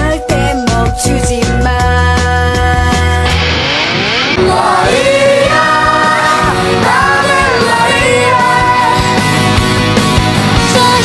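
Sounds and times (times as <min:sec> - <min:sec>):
layered female pop vocals: 0:00.0 - 0:03.4, 0:04.4 - 0:09.4, 0:10.6 - 0:11.0
synth backing: 0:02.2 - 0:10.6.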